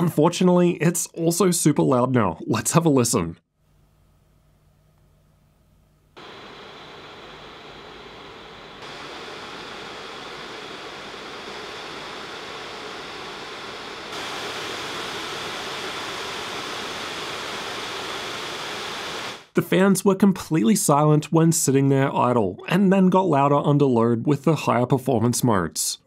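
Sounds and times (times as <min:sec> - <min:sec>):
laptop cooling fans whooshing: 0:06.1 - 0:19.6.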